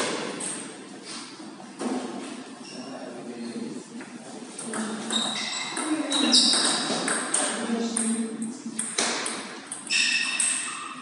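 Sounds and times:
table tennis ball clicks and pings: 4.6s - 8.2s, 8.8s - 11.0s.

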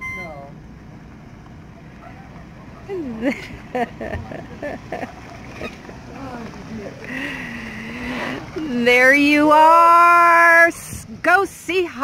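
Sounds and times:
low engine rumble: 0.0s - 12.0s
tyres crunching on gravel: 0.8s - 9.9s.

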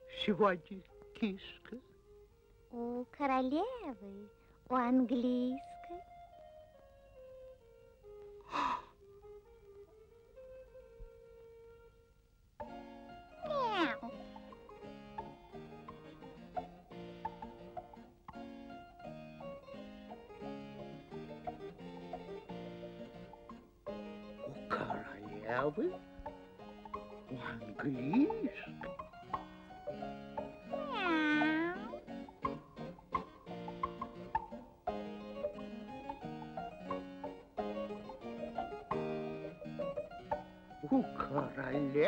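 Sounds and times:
held music notes: 0.0s - 42.0s
cat meowing: 13.4s - 14.1s, 30.7s - 32.0s.

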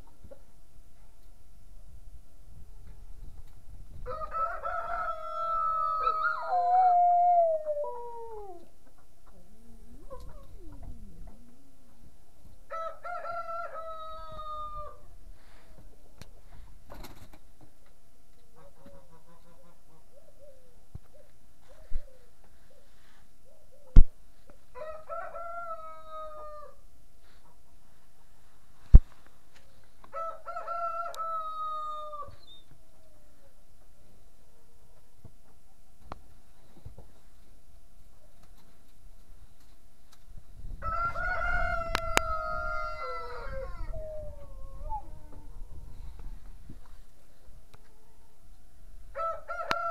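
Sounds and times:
rooster crowing: 4.0s - 8.6s, 12.7s - 15.0s, 24.8s - 26.8s, 30.1s - 32.4s, 40.8s - 44.2s, 49.1s - 49.9s
chickens clucking: 8.8s - 12.0s.

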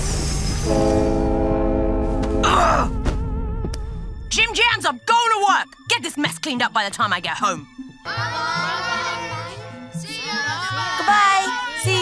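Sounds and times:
held chord of steady tones: 8.1s - 12.0s.

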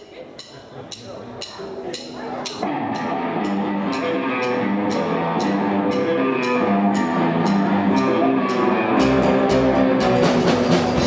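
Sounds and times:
voices in room: 0.0s - 9.0s
drum clicks: 0.4s - 11.0s
rockabilly band playing: 1.4s - 11.0s.

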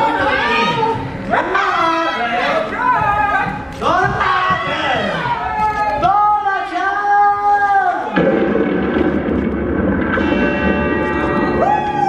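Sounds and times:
dense wash of stage sound: 8.1s - 12.0s.

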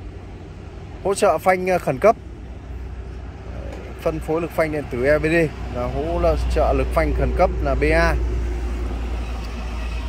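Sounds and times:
road traffic rumble and hiss: 0.0s - 10.0s
man speaking: 3.9s - 8.2s.

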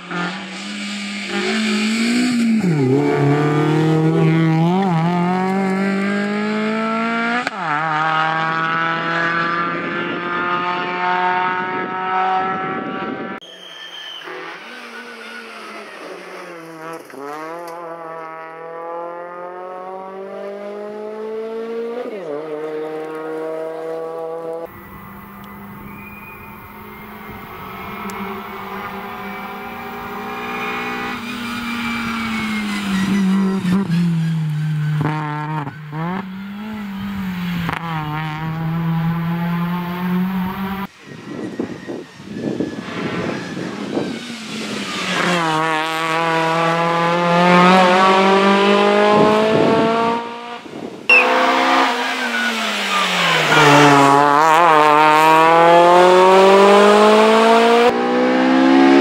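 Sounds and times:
car engine revving hard: 0.0s - 12.9s, 14.4s - 34.2s, 34.8s - 40.9s, 44.4s - 59.0s.

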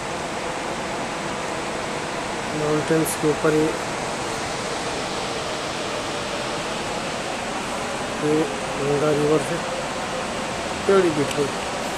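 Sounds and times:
river flowing: 0.0s - 11.9s.

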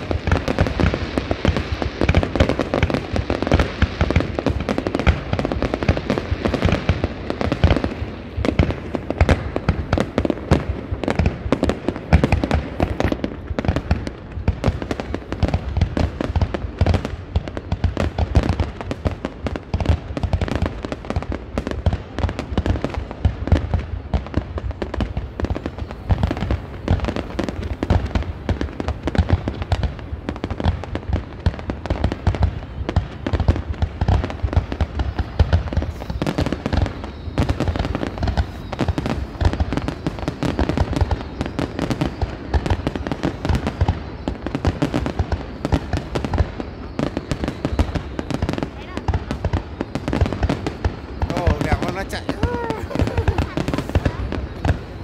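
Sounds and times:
fireworks launches and bursts: 0.0s - 55.0s.

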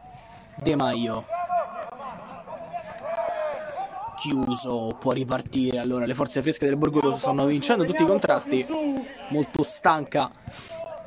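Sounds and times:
men shouting at a distance: 1.0s - 4.8s, 7.2s - 10.1s, 10.7s - 11.0s.

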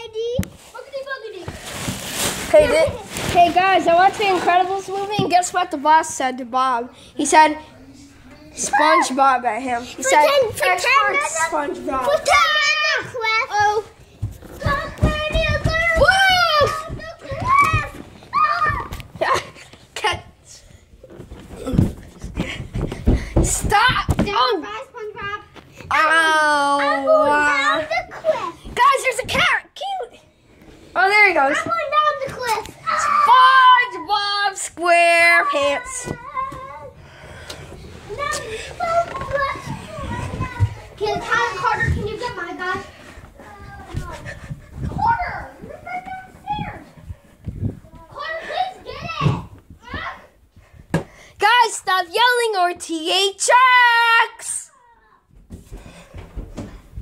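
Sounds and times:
children calling out and chattering: 0.0s - 6.2s, 6.8s - 50.8s, 51.4s - 56.8s.

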